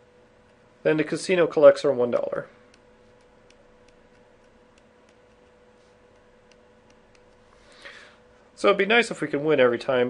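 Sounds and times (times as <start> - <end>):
faint steady hum: 0.0 - 10.0
stylus ticking on pen tablet: 2.2 - 7.4.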